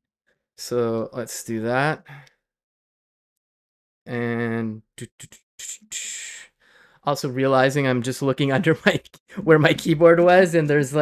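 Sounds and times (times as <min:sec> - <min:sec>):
breathy exhale: 0:06.2 - 0:07.0.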